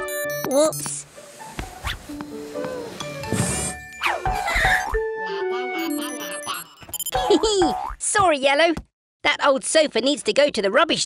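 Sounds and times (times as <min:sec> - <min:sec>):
light cartoon music: 0:00.0 - 0:07.9.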